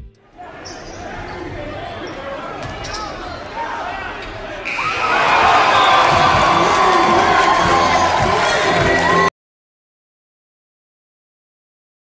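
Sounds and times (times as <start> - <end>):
crowd and players chatter: 0.2 - 9.3.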